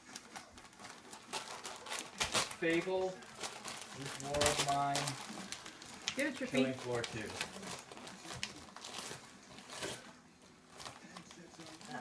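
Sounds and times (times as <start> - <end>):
paper crinkling and ripping: 0.0 - 12.0.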